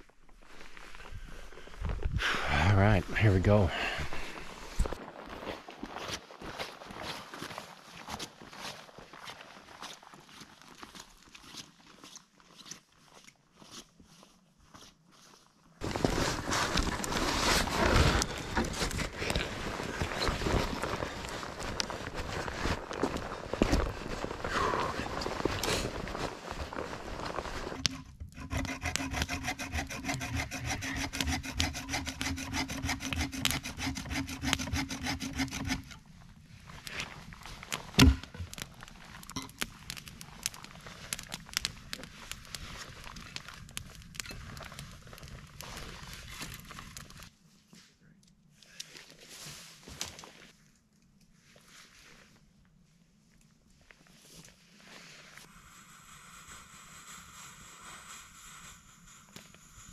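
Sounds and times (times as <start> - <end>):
wood rubbing and scraping: 15.8 - 22.9, 23.7 - 36.0
campfire crackling: 15.8 - 47.3
sawing wood: 27.8 - 36.0.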